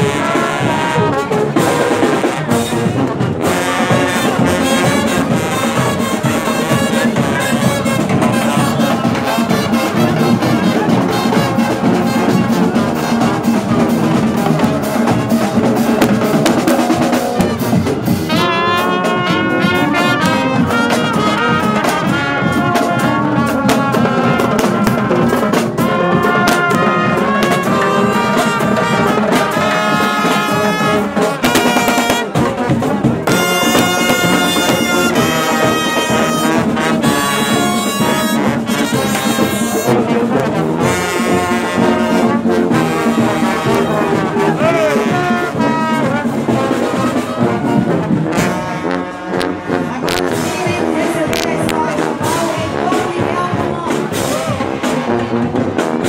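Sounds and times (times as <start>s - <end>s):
brass instruments playing melody: 0.0s - 56.0s
marching snare drums: 0.0s - 56.0s.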